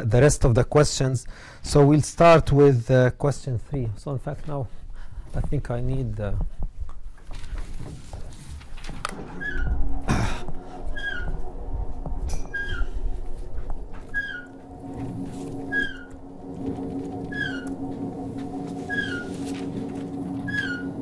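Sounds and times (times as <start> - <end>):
short falling squeak: 9.1 - 10.0, 10.9 - 11.4, 12.3 - 13.1, 14.1 - 14.6, 18.9 - 19.3, 20.5 - 21.0.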